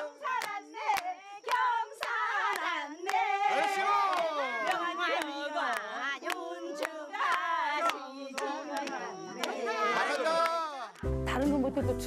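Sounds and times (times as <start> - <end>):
group clapping in time: 0.0 - 11.1
voices singing: 0.0 - 12.0.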